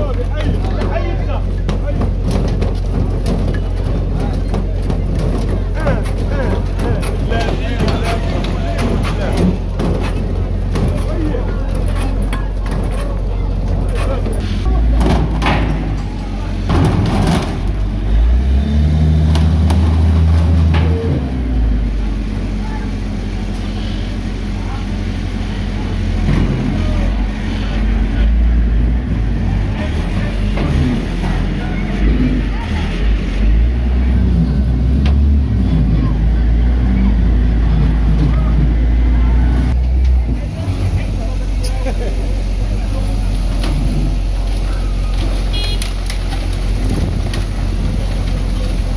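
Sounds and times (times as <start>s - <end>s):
people's voices: 0.0s - 48.9s
wheel loader diesel engine: 0.0s - 48.9s.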